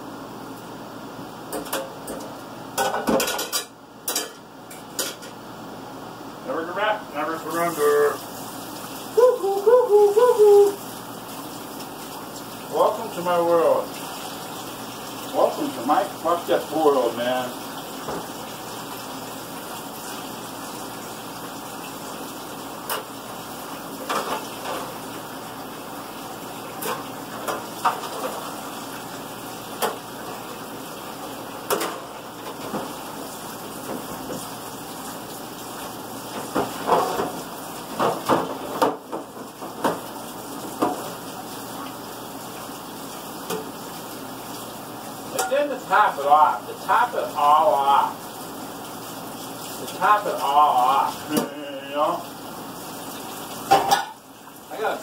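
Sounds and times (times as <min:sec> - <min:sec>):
plates and utensils clinking: 0:02.8 - 0:05.4, 0:53.7 - 0:54.2
running tap water: 0:07.2 - 0:55.0.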